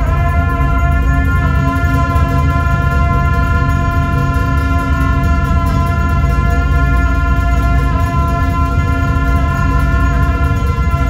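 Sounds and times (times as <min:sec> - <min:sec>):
deep steady drone: 0:00.0 - 0:11.0
shawms playing long notes: 0:00.0 - 0:11.0.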